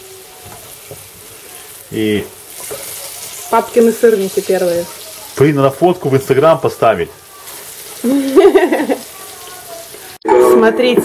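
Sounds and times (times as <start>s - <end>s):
pancakes sizzling in oil: 0.0s - 10.2s.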